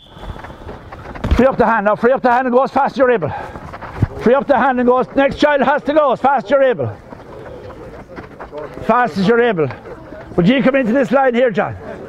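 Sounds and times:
outdoor noise: 0:00.0 - 0:12.0
faint background voices: 0:02.7 - 0:12.0.

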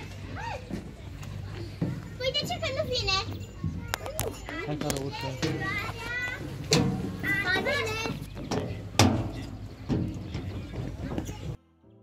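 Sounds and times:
children calling: 0:00.0 - 0:11.6
sharp knocks: 0:06.7 - 0:11.4.

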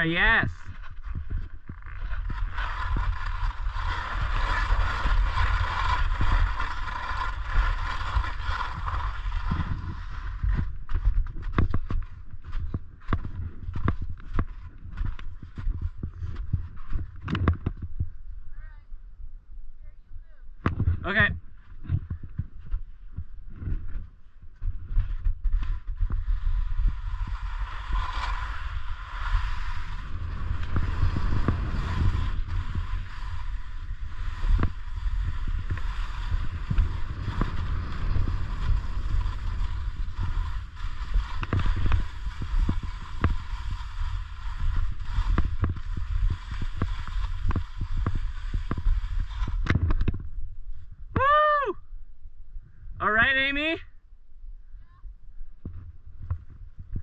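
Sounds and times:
wind rumbling on microphone: 0:00.0 - 0:57.0
knocks and scrapes: 0:00.6 - 0:18.2, 0:20.6 - 0:50.9
snowboard scraping hiss on snow: 0:02.1 - 0:11.0, 0:25.0 - 0:50.1.

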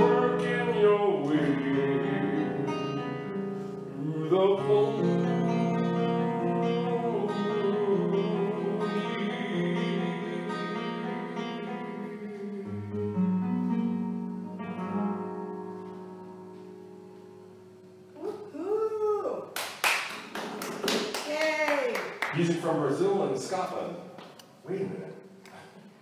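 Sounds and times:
man singing: 0:00.0 - 0:03.2, 0:03.9 - 0:13.2
classical guitar: 0:00.0 - 0:18.6.

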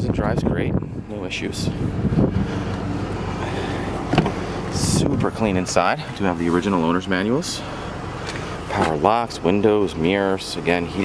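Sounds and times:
wind blowing across microphone: 0:00.0 - 0:03.4, 0:04.3 - 0:05.8.

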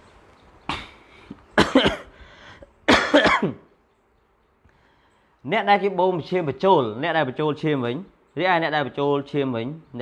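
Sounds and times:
person coughing: 0:01.6 - 0:02.2, 0:02.9 - 0:03.7.

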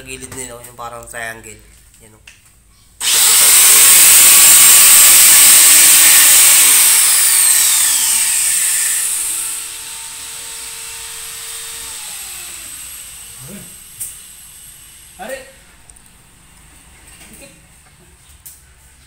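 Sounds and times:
angle grinder cutting plastic: 0:03.0 - 0:15.3.

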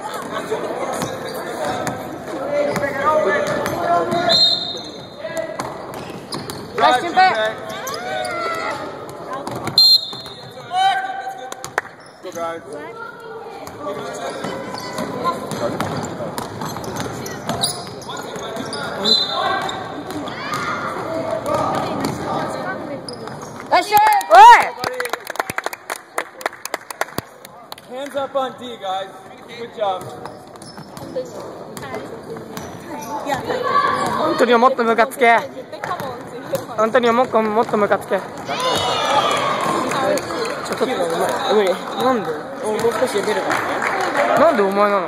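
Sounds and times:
voices in echoing hall: 0:00.0 - 0:45.0.

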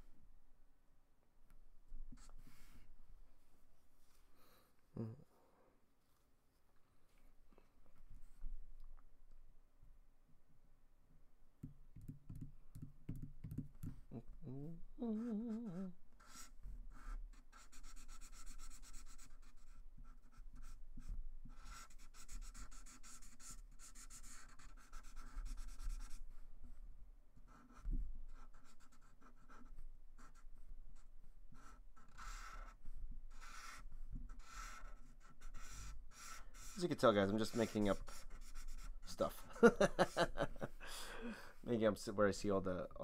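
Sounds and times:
felt-tip marker rubbing on paper: 0:27.7 - 0:39.3.

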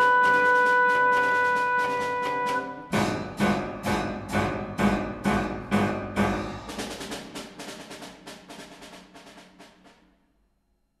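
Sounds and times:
chamber ensemble march: 0:00.0 - 0:06.3
percussion strokes: 0:00.0 - 0:09.9.

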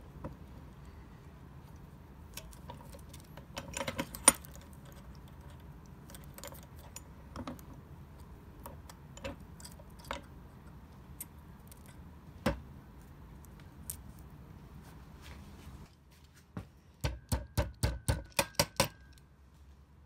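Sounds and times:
sharp metal knocks: 0:17.0 - 0:19.2.

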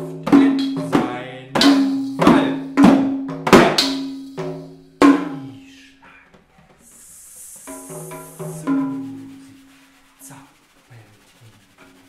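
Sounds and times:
low hand drum stroke: 0:00.0 - 0:12.0.

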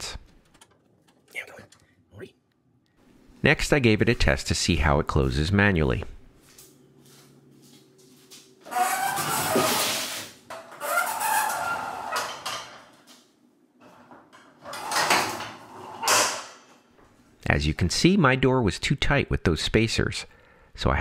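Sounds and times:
garage door rollers rumbling and scraping: 0:08.7 - 0:13.0, 0:13.9 - 0:16.6.

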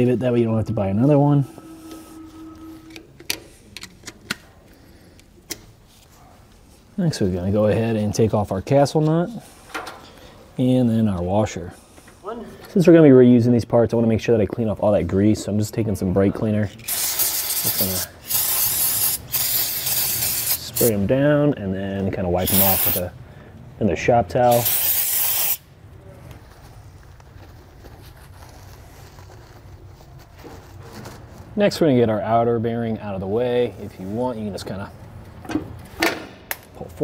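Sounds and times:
aerosol can spraying: 0:16.9 - 0:20.9, 0:22.4 - 0:23.0, 0:24.5 - 0:25.6.

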